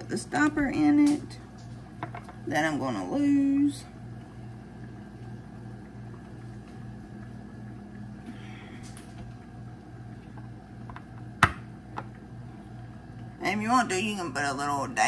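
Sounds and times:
low pulsing hum: 0.0s - 15.0s.

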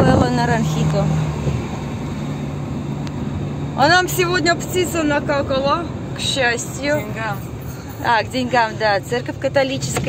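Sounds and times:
car engine and road hum: 0.0s - 10.0s.

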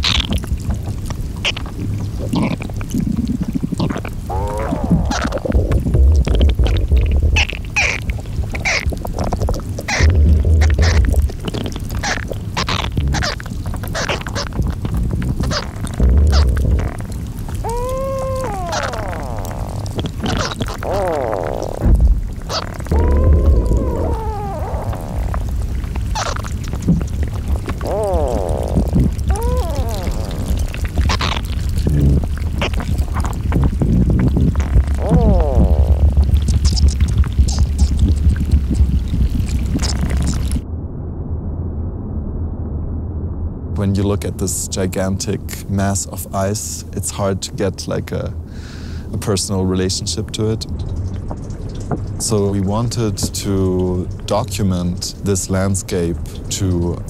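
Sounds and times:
ice clicking and crackling: 0.0s - 40.6s
water gurgling and trickling: 0.0s - 40.8s, 49.2s - 57.0s
low rumbles: 0.0s - 47.0s, 48.0s - 57.0s
squealing pitched glides: 15.4s - 26.5s, 27.8s - 31.5s.

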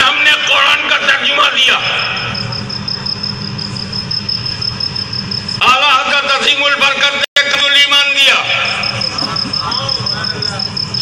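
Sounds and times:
cricket trilling: 0.0s - 6.6s, 7.4s - 11.0s.

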